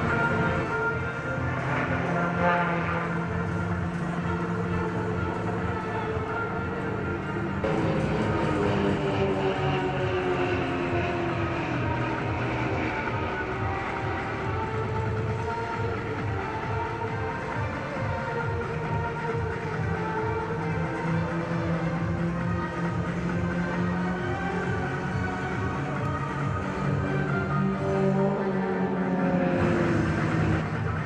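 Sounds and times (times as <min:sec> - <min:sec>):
music: 0:00.0 - 0:31.0
propeller planes droning: 0:00.0 - 0:31.0.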